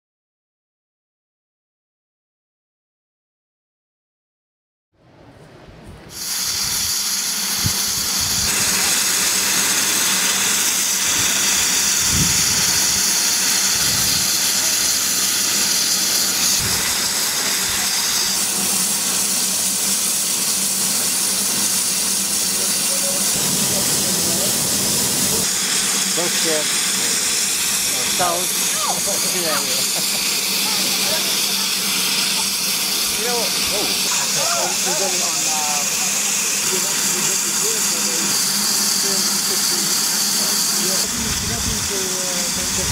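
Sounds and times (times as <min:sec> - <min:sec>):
steam hissing from locomotive: 0:06.1 - 0:42.9.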